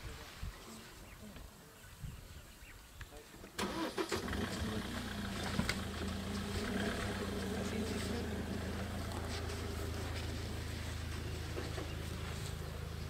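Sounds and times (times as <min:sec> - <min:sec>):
vehicle engine starting and idling: 0:03.6 - 0:13.0.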